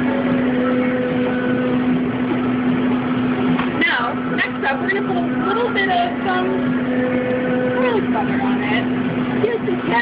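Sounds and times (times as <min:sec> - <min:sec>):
low machine hum: 0:00.0 - 0:10.0
indistinct voices talking: 0:03.7 - 0:10.0.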